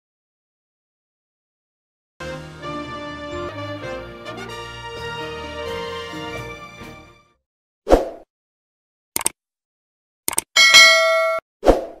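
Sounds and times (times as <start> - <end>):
double mouse click: 9.2 - 9.4, 10.3 - 10.5
notification bell ding: 10.6 - 11.4.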